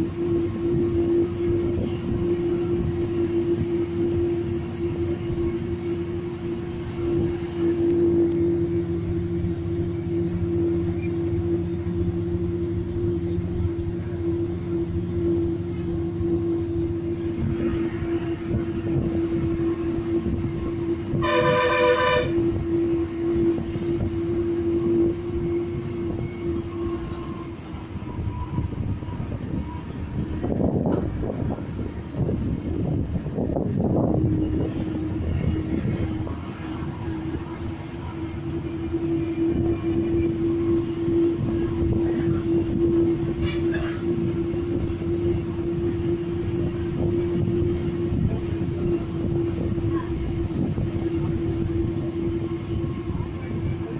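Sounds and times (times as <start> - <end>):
bus engine droning under load: 0.0 - 53.9
vehicle horn: 21.1 - 22.6.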